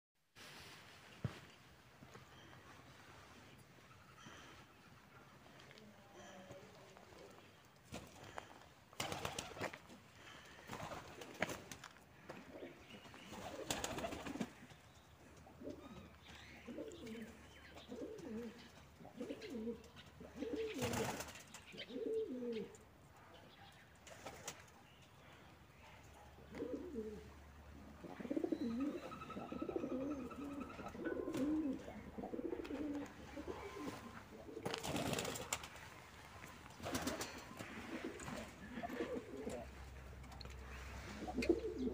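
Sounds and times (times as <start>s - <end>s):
pigeons cooing: 12.2s - 22.8s, 26.4s - 35.9s, 36.7s - 41.9s.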